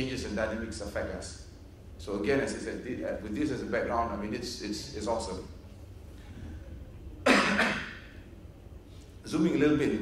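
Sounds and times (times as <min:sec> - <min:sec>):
man coughing: 0:07.2 - 0:08.1.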